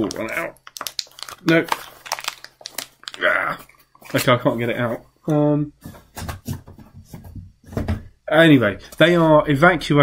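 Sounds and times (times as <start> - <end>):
packaging crinkling: 0.0 - 4.3.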